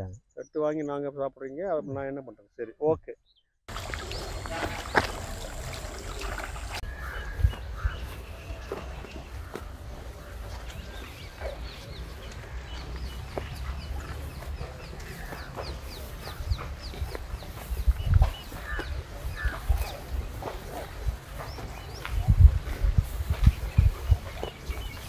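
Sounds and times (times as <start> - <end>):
birds chirping: 0.0 - 25.0.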